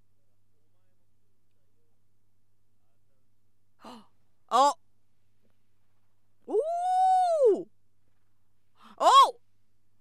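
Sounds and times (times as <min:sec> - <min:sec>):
woman's high-pitched oooh: 0:06.5 - 0:07.7
woman's short high exclamation: 0:09.0 - 0:09.4.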